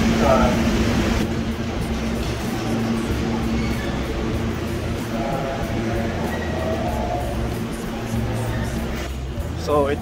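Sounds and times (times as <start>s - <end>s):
subway train rumbling: 0.0s - 10.0s.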